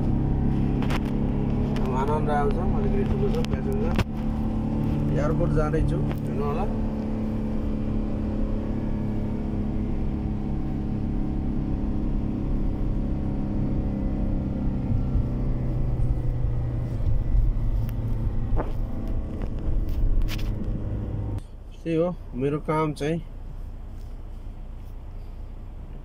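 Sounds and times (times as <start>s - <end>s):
vehicle engine and road noise: 0.0s - 26.0s.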